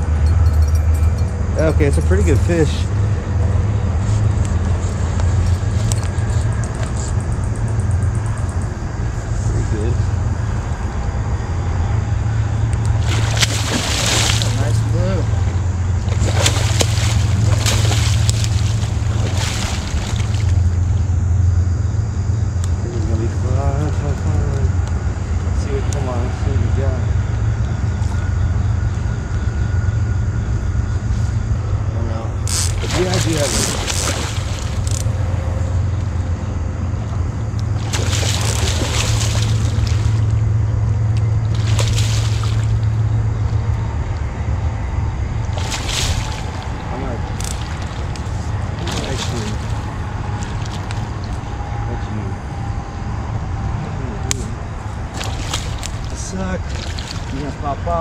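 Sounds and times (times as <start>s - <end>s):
steady low hum: 0.0s - 58.0s
fish splashing at surface: 13.0s - 20.6s, 32.6s - 35.0s, 37.8s - 40.3s, 41.5s - 42.8s, 45.5s - 51.4s, 55.1s - 57.5s.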